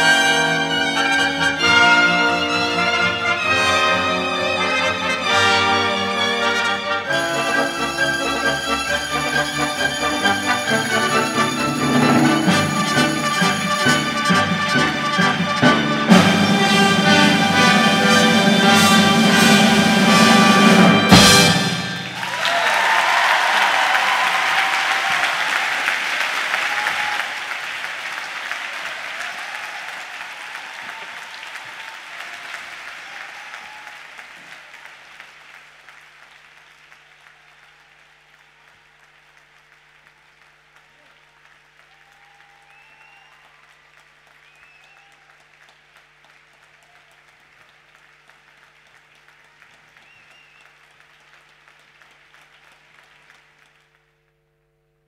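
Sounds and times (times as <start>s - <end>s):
audience applauding: 2.4s - 54.1s.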